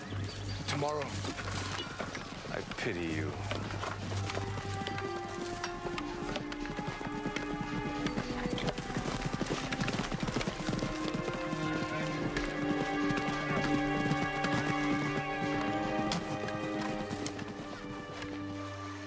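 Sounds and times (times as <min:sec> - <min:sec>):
background music with held notes: 0:00.0 - 0:19.0
horses' hooves clip-clopping: 0:00.0 - 0:19.0.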